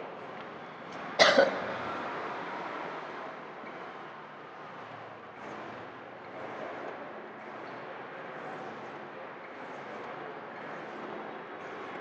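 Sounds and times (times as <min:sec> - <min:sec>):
woman coughing: 0:01.2 - 0:01.6.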